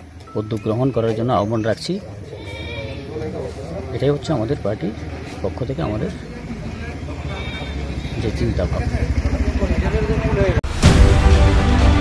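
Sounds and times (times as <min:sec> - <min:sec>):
news theme music: 0:10.6 - 0:12.0.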